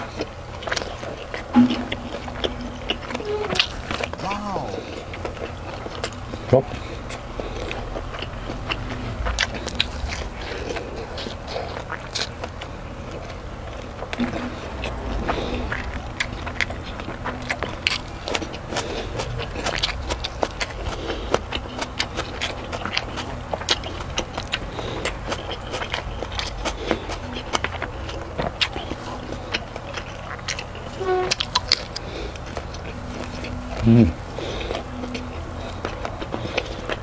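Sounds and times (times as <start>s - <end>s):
close chewing with wet smacks: 0.0s - 37.0s.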